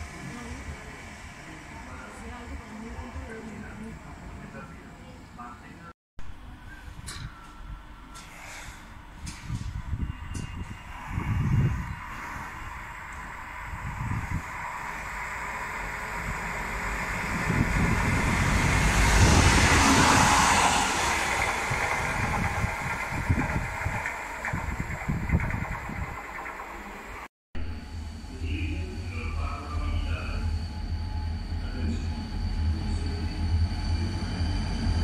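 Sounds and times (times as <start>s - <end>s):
wheels rumbling on rail: 0.0s - 5.3s, 6.2s - 35.0s
locomotive passing at speed: 9.7s - 35.0s.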